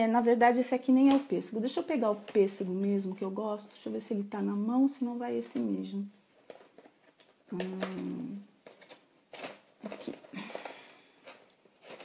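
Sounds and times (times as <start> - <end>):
pencils clicking and rustling: 0.8 - 3.8, 4.9 - 12.0.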